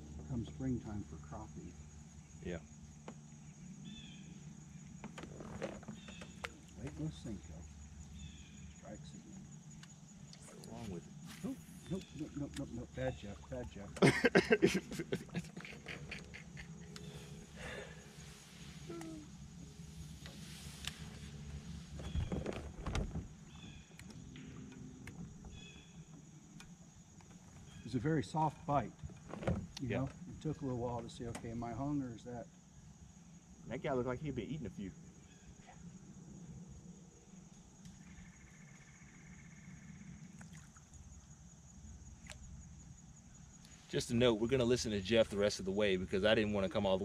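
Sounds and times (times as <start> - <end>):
person laughing: 14.0 - 17.0
faint bird call: 15.3 - 19.5.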